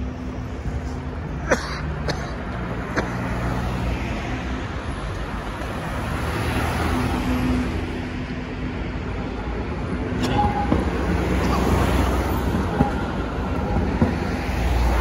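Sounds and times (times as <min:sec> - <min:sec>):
cars passing close by: 0:00.0 - 0:15.0
brief tone: 0:10.2 - 0:11.0.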